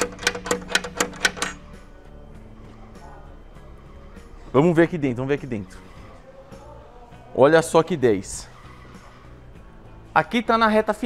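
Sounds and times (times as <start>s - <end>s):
metal latch clicking: 0.0s - 1.8s.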